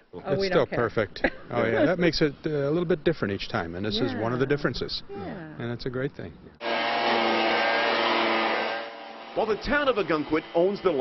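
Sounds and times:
leaf blower running: 0:06.6 - 0:11.0.

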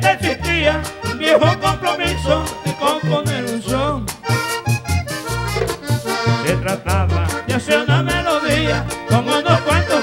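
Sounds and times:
bass line: 0:00.1 - 0:09.3
button accordion melody: 0:00.1 - 0:10.0
steady percussion: 0:05.2 - 0:06.5.

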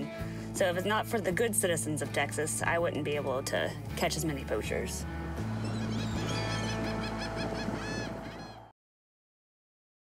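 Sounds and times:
gulls calling: 0:05.2 - 0:08.7.

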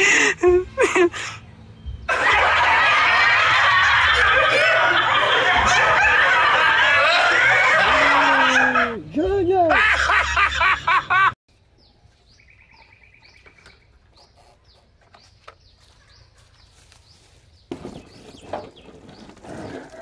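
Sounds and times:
loud laughter: 0:02.1 - 0:09.0, 0:09.7 - 0:11.4
voices: 0:02.1 - 0:10.2.

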